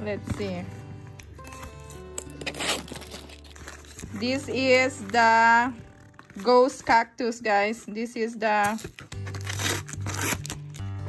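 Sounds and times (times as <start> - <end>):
soft background music: 0.0 - 11.0
cardboard tearing and crinkling: 1.4 - 7.0, 8.4 - 11.0.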